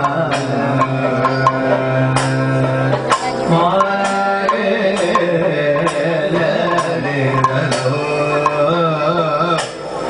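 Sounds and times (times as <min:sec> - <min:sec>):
drum beats: 0:00.0 - 0:10.0.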